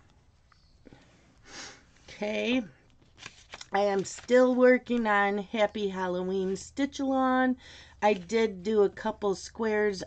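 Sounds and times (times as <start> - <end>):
sniff through the nose: 1.1 - 2.0.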